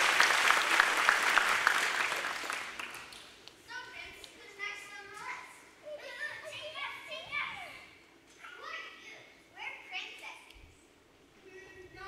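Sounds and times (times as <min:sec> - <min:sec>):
child speaking: 0:03.7 - 0:10.6, 0:11.4 - 0:12.0.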